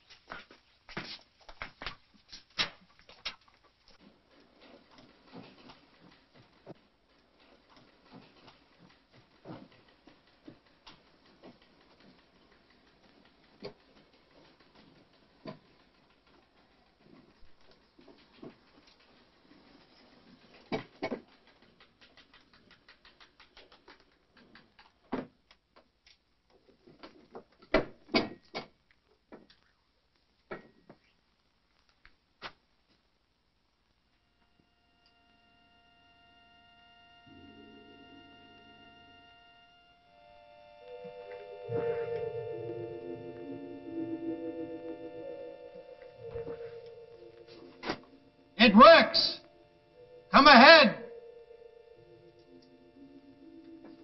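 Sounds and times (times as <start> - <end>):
soft taps and shuffling: 0.0 - 4.0.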